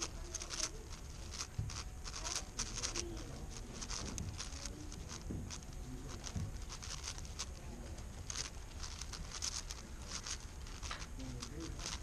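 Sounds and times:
puzzle cube plastic clicks: 0.0s - 12.0s.

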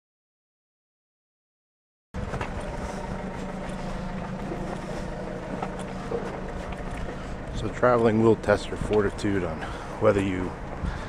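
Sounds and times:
street noise: 2.2s - 11.0s
vehicle engine running: 2.2s - 11.0s.

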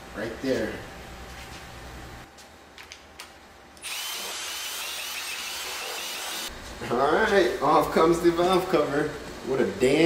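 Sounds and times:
cordless drill spinning: 3.8s - 6.5s.

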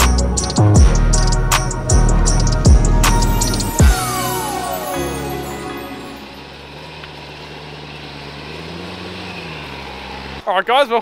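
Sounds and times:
background music: 0.0s - 6.9s
car engine idling: 0.0s - 10.5s.

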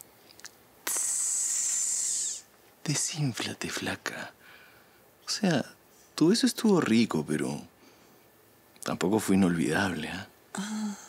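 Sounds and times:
man hissing through teeth: 0.8s - 2.5s.

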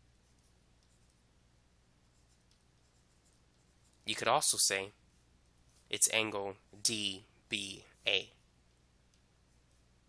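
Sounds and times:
low steady hum: 0.0s - 10.0s
stylus scratching on tablet: 0.1s - 1.3s, 2.0s - 4.2s, 9.4s - 10.0s.

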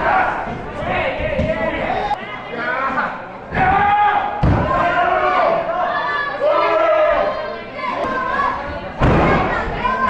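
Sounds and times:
crowd shouting: 0.0s - 2.2s, 3.5s - 10.0s.

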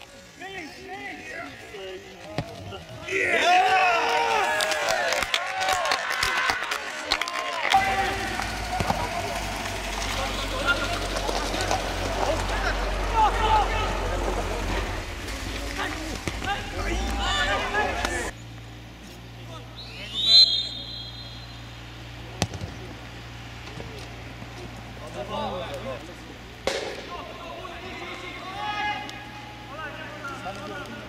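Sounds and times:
players calling out: 6.0s - 31.0s
low rumble: 7.8s - 18.8s.

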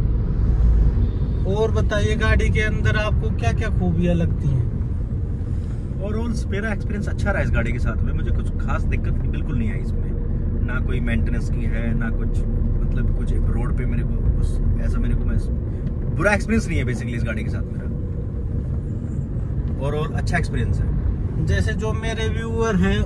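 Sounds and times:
engine and road rumble: 0.0s - 23.0s.

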